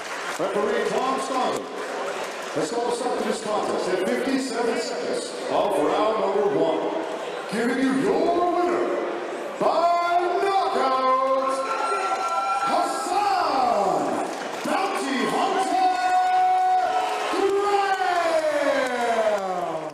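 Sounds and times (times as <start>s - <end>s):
crowd cheering: 0.0s - 3.7s, 9.6s - 19.9s.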